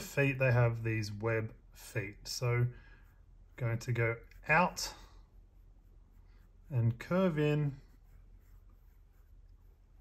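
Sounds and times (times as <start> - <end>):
pencil scratching on paper: 1.8 - 10.0.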